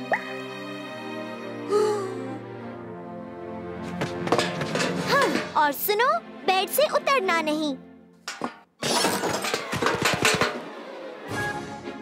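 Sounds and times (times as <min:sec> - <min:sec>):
cartoon clattering knocks: 0:08.3 - 0:10.6.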